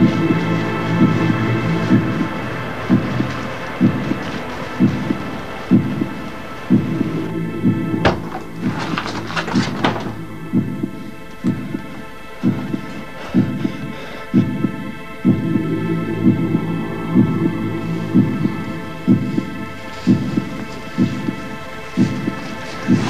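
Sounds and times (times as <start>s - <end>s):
droning hum: 0.0s - 23.0s
low thudding pulse: 0.0s - 23.0s.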